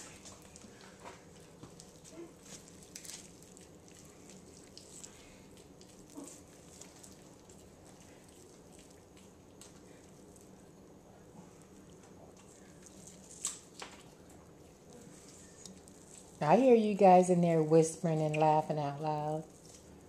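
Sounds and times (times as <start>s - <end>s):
wet tearing of chicken meat: 0.1s - 10.6s, 11.7s - 14.2s.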